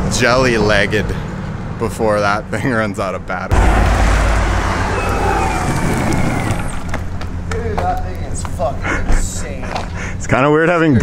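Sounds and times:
longboard wheels rolling on asphalt: 0:04.6 - 0:07.4.

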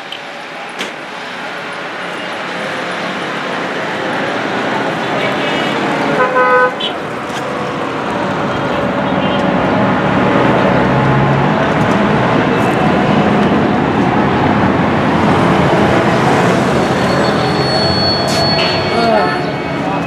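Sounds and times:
road traffic engines passing: 0:00.0 - 0:20.0
car horn honking: 0:05.5 - 0:07.0, 0:16.8 - 0:20.0.

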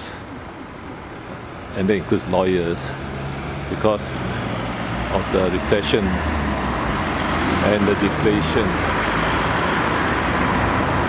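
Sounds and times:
vehicles passing: 0:00.0 - 0:11.0.

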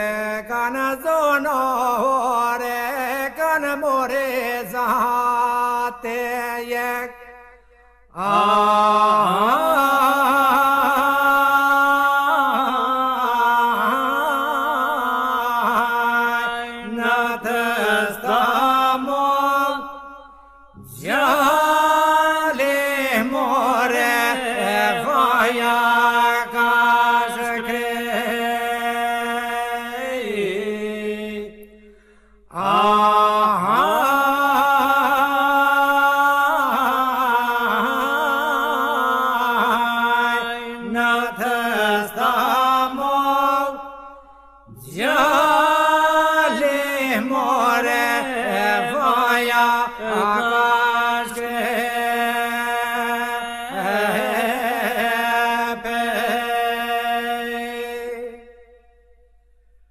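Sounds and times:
men singing a steady drone: 0:00.0 - 0:31.9, 0:32.5 - 0:58.5
lead voice singing a wavering melody: 0:32.5 - 0:58.5.

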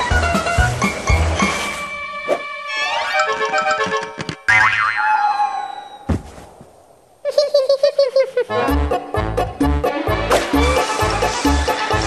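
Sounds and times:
wobbling boing sound effect: 0:04.5 - 0:05.6
thud: 0:06.1 - 0:06.7.

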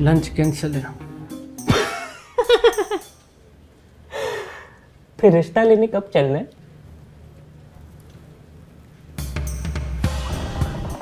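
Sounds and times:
person sighing: 0:04.1 - 0:04.9.

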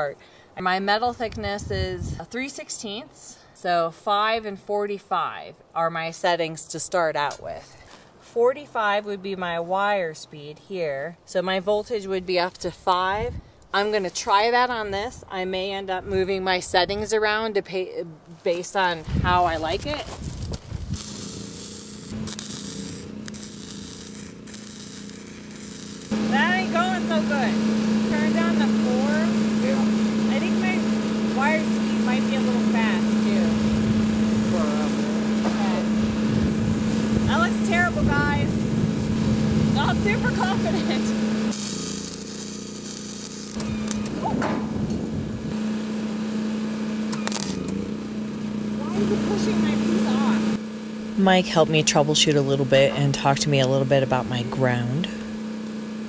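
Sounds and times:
steady low hum: 0:19.0 - 0:56.0
welding arc crackling hiss: 0:19.3 - 0:33.5, 0:39.8 - 0:44.3, 0:47.0 - 0:47.8.

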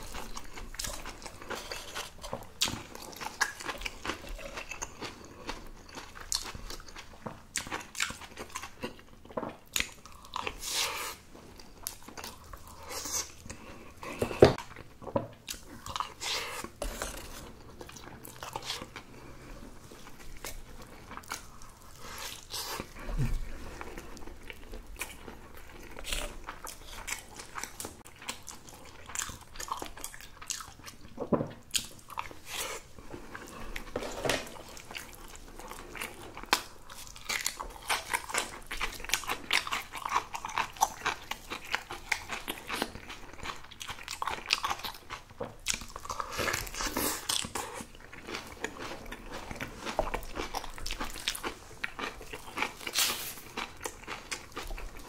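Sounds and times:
close chewing and crunching: 0:00.0 - 0:55.0.

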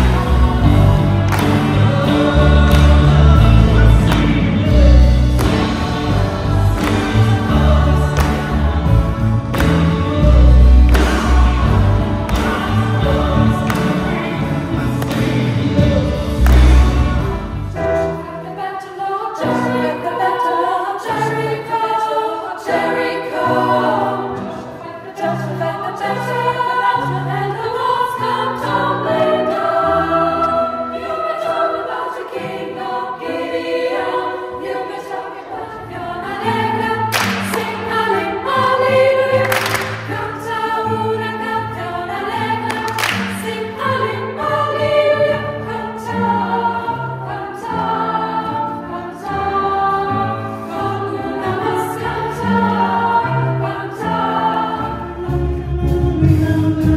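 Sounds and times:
girls' choir singing: 0:00.0 - 0:56.9
sharp hand claps: 0:01.2 - 0:01.9, 0:05.3 - 0:06.0, 0:06.7 - 0:07.5, 0:08.1 - 0:08.6, 0:09.5 - 0:10.1, 0:10.8 - 0:11.6, 0:12.2 - 0:12.7, 0:13.6 - 0:14.1, 0:14.9 - 0:15.5, 0:16.4 - 0:17.0, 0:37.1 - 0:37.9, 0:39.4 - 0:40.2, 0:42.6 - 0:43.5.

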